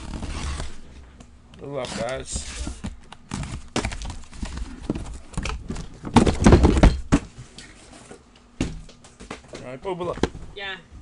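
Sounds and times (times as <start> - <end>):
cardboard box scraping and tearing: 0.0 - 0.8.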